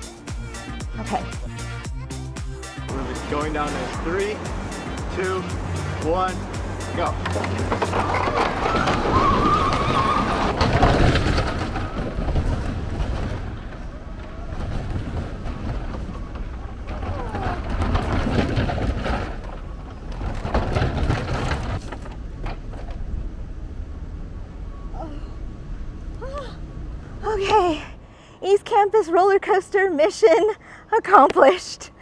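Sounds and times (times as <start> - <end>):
roller coaster cart rumbling: 0.0 - 32.0
voices: 2.9 - 10.5, 27.2 - 32.0.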